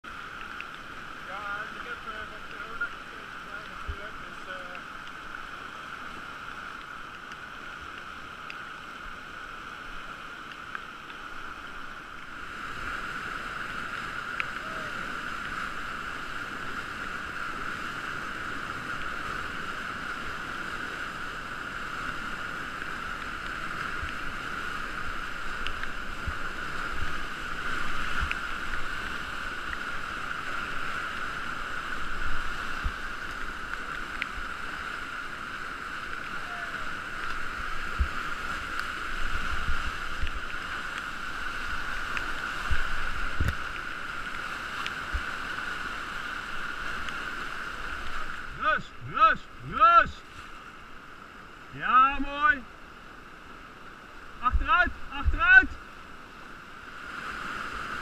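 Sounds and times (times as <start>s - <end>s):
whitewater rushing: 0.1s - 58.0s.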